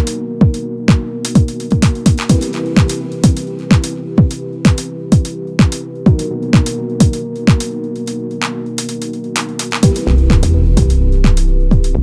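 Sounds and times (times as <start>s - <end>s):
kick drum beat: 0.0s - 8.2s, 9.0s - 12.0s.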